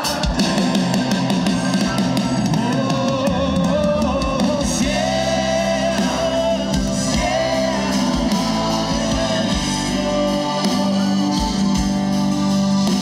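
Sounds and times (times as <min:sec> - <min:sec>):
live rock band: 0:00.0 - 0:13.0.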